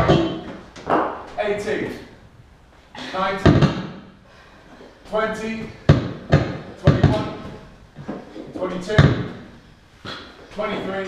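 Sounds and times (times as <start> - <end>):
medicine ball thudding against wall: 3.4 - 4.1, 5.8 - 7.5.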